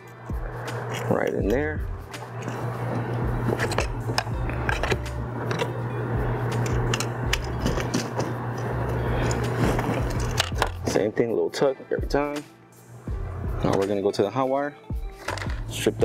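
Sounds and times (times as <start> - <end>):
steady low hum: 0.0 - 11.2, 12.0 - 13.9.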